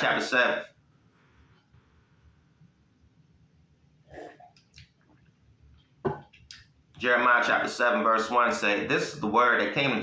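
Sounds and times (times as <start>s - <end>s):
faint mouth sounds: 4.0s - 6.7s.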